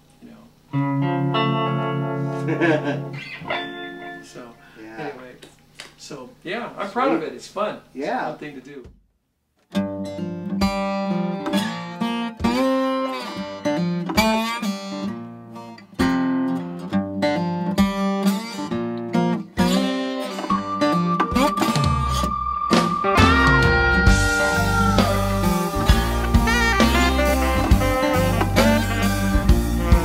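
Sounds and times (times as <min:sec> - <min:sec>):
guitar melody over chords: 0:00.7 - 0:04.4, 0:09.8 - 0:30.0
bass and drums: 0:21.5 - 0:30.0.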